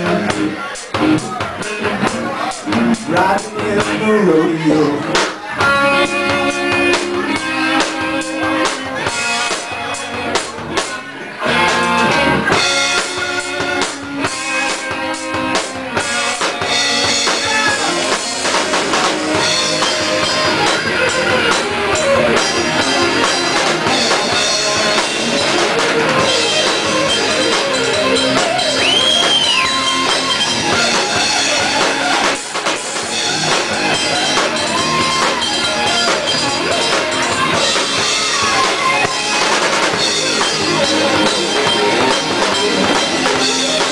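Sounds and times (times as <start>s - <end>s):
drum kit: 0.0s - 43.9s
electric guitars: 0.0s - 43.9s.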